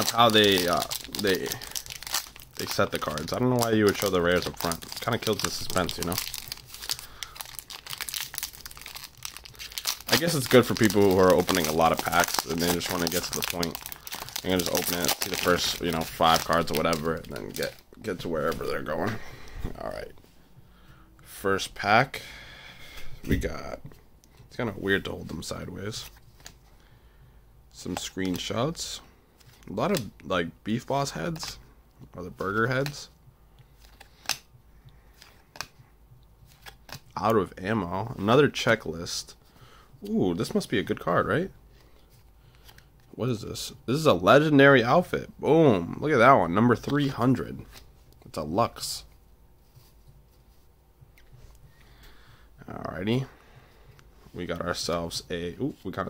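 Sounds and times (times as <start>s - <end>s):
foil wrapper crinkling and tearing: 0.0s - 18.8s.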